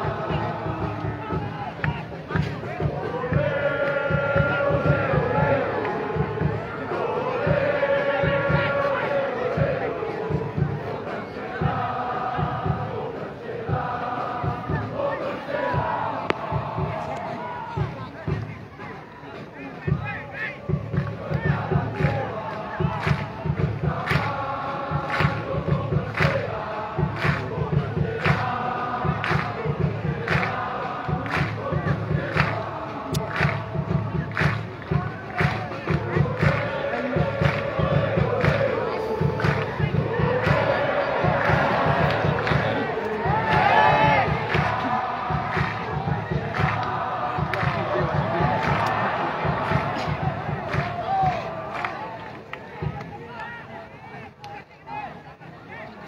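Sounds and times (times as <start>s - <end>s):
steady drumbeat: 0.0s - 53.2s
crowd chanting: 0.0s - 56.0s.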